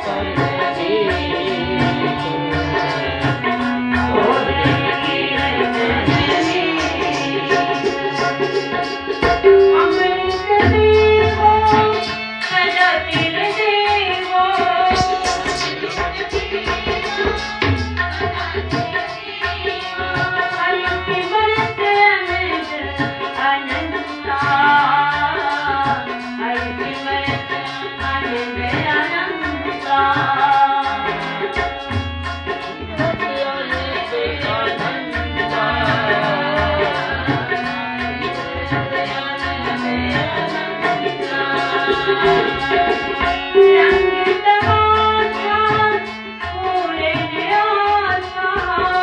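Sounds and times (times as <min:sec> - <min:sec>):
woman singing: 0:00.0 - 0:08.5, 0:09.3 - 0:15.7, 0:18.0 - 0:31.8, 0:32.8 - 0:49.0
harmonium chords: 0:00.0 - 0:49.0
tabla strokes: 0:01.5 - 0:21.9, 0:22.7 - 0:46.4
woman singing a hymn: 0:04.2 - 0:07.9, 0:09.4 - 0:11.9, 0:33.0 - 0:37.5, 0:38.5 - 0:46.0.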